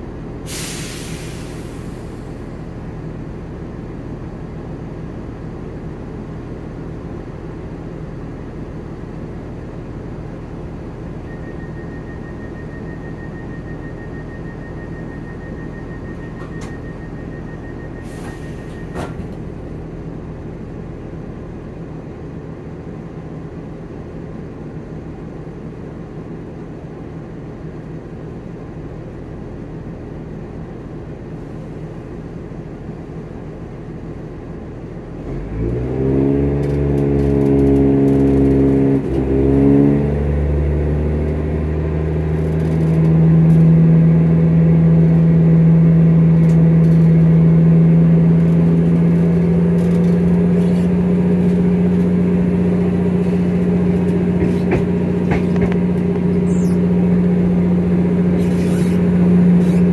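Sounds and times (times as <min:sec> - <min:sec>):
diesel engine rumble: 0:00.0 - 0:59.9
pulsing warning tone: 0:11.3 - 0:18.9
doors closing clunk: 0:18.2 - 0:19.4.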